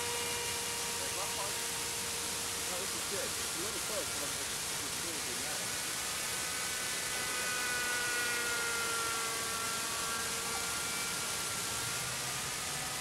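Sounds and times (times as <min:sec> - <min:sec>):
model helicopter engine whining: 0:00.0 - 0:13.0
steady hiss: 0:00.0 - 0:13.0.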